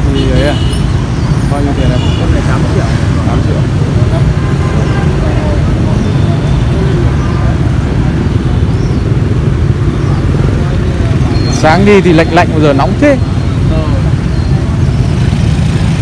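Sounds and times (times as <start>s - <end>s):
street traffic rumble: 0.0s - 16.0s
people talking: 1.5s - 8.4s, 11.4s - 14.2s.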